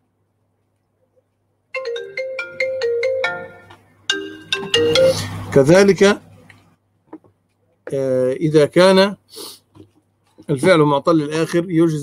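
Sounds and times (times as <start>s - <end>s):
phone ringtone melody: 1.8s - 5.5s.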